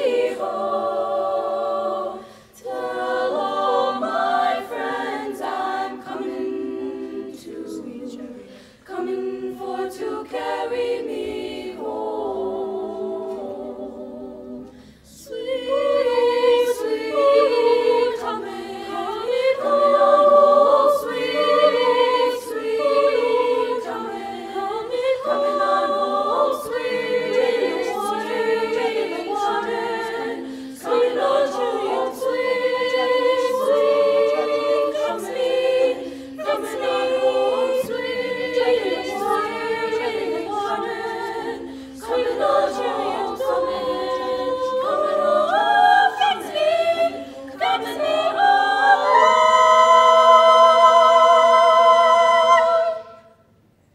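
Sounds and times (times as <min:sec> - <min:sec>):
women's choir singing a cappella: 0:00.0 - 0:53.6.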